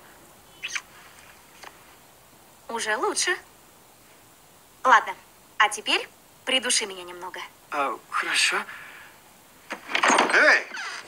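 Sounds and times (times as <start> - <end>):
faint lip click: 0.6 - 1.8
lip smack of a kiss: 0.6 - 1.8.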